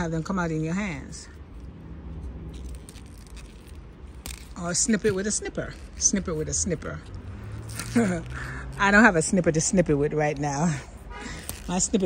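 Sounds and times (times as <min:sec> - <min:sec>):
rustling of vines and leaves: 0:01.0 - 0:12.0
pea pods picked off: 0:02.2 - 0:08.3.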